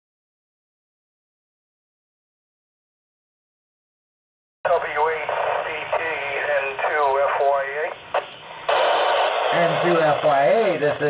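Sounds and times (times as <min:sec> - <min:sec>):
radio hiss: 0:04.7 - 0:11.0
thin radio speech: 0:04.7 - 0:11.0.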